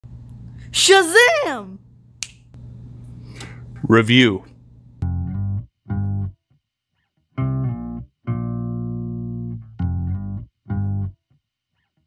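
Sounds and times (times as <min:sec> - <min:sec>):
steady low hum: 0:00.0 - 0:05.0
finger snap: 0:02.2 - 0:02.6.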